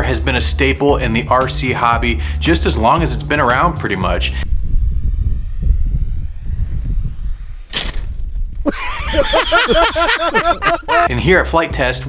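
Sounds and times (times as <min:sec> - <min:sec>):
wind buffeting microphone: 0:04.0 - 0:11.1.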